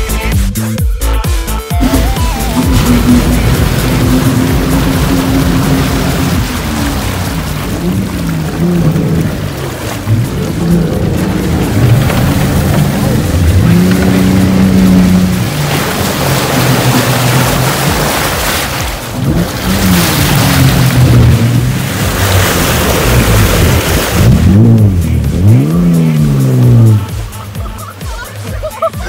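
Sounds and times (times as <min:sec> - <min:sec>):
vehicle engine revving: 0:01.7 - 0:29.0
water splashing around wheels: 0:01.7 - 0:29.0.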